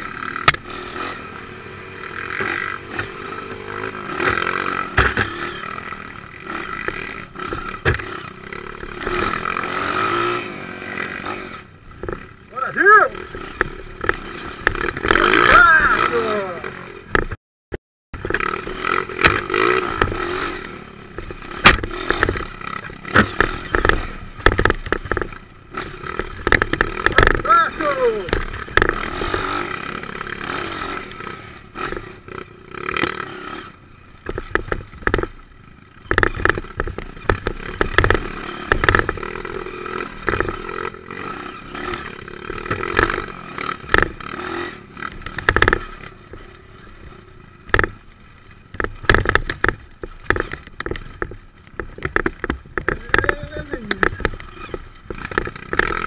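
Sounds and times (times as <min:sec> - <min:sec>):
motorcycle engine revving: 0:00.0 - 0:17.4, 0:18.2 - 0:56.0
rocks knocking and clattering: 0:21.1 - 0:27.4, 0:34.2 - 0:35.4, 0:36.0 - 0:40.8, 0:43.8 - 0:44.2, 0:45.1 - 0:46.7, 0:47.6 - 0:56.0.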